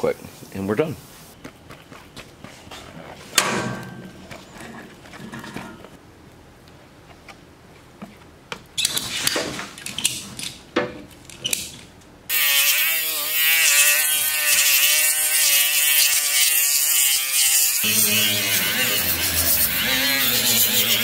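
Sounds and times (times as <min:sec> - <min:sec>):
angle grinder sanding metal: 0:12.3 - 0:21.0.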